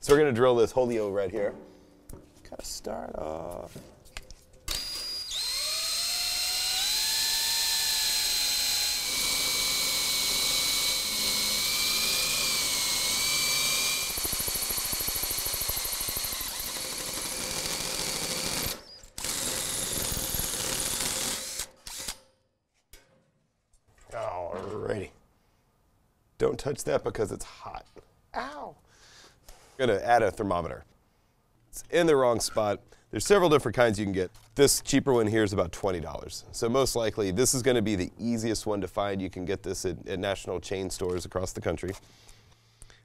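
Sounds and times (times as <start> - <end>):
power drill hole saw cutting steel: 4.7 - 22.2.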